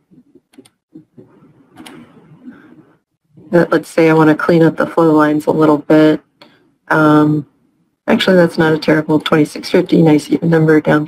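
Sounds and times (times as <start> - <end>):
faint low room noise: 0.0 - 11.0
computer mouse clicking: 0.4 - 2.2.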